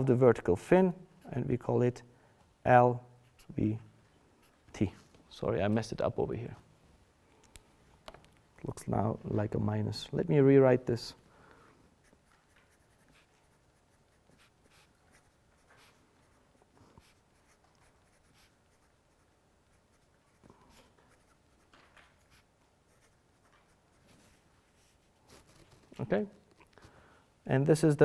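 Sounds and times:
pen scratching on paper: 12.0s - 25.8s.

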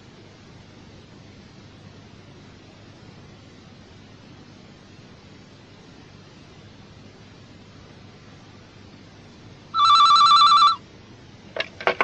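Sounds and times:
warbling electronic telephone ring: 9.8s - 10.8s.

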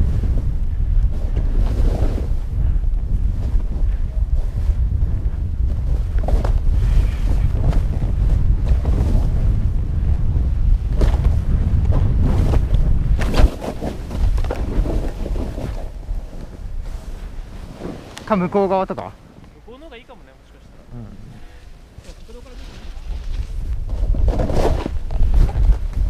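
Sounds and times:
wind rushing over microphone: 0.0s - 26.0s.

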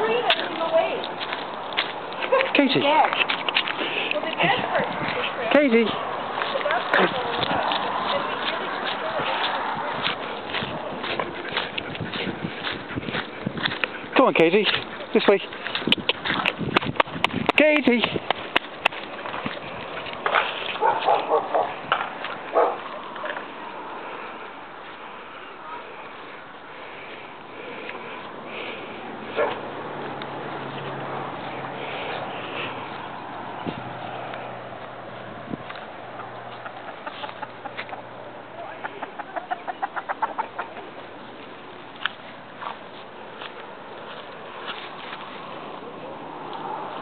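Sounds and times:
dog barking: 20.8s - 21.8s, 22.5s - 22.8s, 29.3s - 29.6s.

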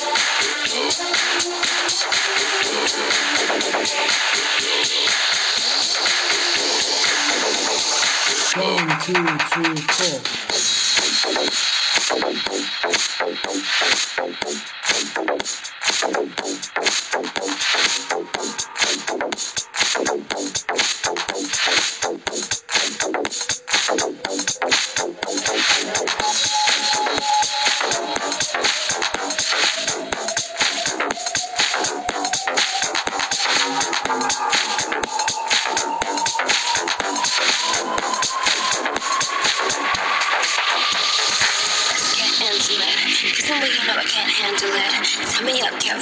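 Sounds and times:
electronic dance music: 0.0s - 46.0s.

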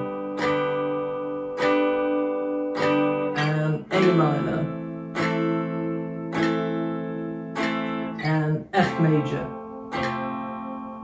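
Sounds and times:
electric guitar chord strums: 0.0s - 11.0s.

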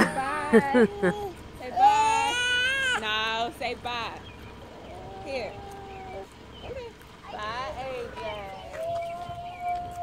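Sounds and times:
young child crying: 0.7s - 3.0s.

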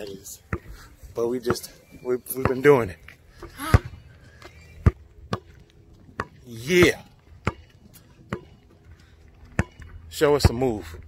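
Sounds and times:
basketball bouncing on asphalt: 0.4s - 0.8s, 1.4s - 11.0s.

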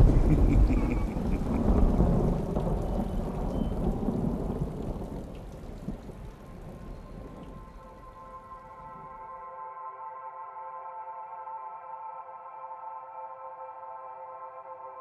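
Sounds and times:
rain hissing: 0.0s - 9.2s
thunder rumbling: 0.0s - 9.2s.

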